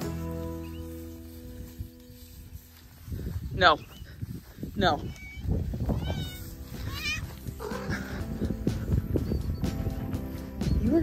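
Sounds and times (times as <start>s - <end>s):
cat meowing: 5.1s - 7.9s.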